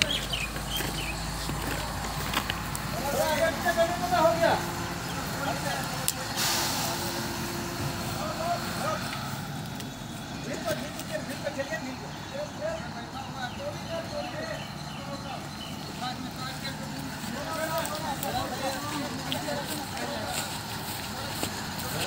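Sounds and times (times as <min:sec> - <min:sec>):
crane engine running: 0:00.0 - 0:22.0
brief hiss: 0:06.4 - 0:07.2.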